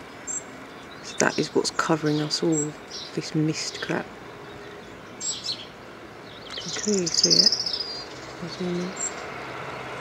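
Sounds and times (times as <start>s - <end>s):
faint outdoor hiss: 0.0s - 10.0s
small bird chirping: 0.0s - 10.0s.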